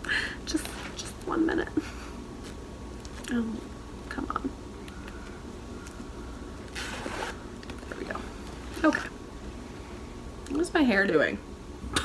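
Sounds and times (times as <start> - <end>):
zipper being pulled shut: 6.7 - 7.4.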